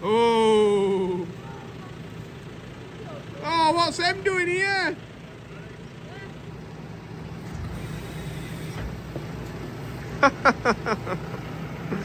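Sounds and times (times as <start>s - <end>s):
tractor and spreader humming: 0.0s - 12.0s
person laughing: 10.1s - 12.0s.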